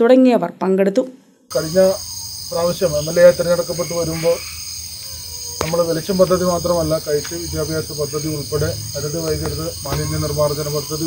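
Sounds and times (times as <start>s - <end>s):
man talking: 1.5s - 4.4s, 5.6s - 11.0s
crickets chirring: 1.5s - 11.0s.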